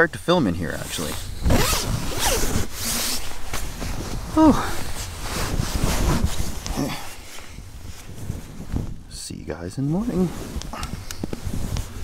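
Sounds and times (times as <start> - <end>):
sleeping bag rustling: 0.7 - 9.1, 9.9 - 12.0
zipper rasping: 1.4 - 6.9.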